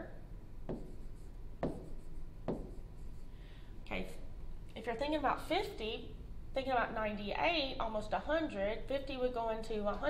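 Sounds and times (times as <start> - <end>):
stylus tapping on screen: 0.6 - 2.9.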